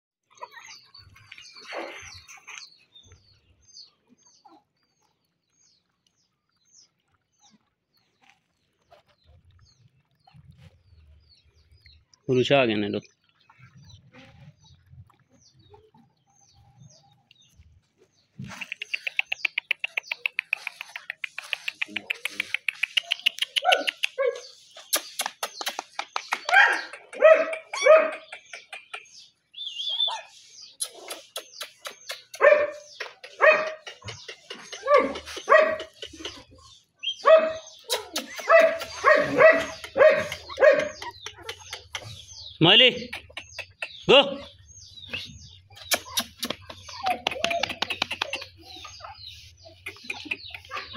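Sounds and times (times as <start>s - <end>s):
puppies yelping and whining: 0.3s - 2.8s, 26.4s - 28.3s, 29.7s - 42.6s, 45.1s - 50.9s.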